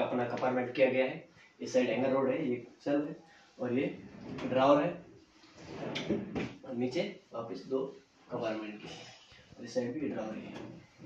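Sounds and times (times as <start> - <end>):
drawer sliding shut: 4.0 - 4.9, 5.6 - 6.6
drawer knock: 6.0 - 6.6.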